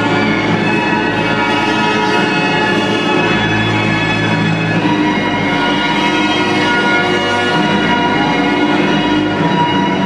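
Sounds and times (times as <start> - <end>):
show music over loudspeakers: 0.0 - 10.0.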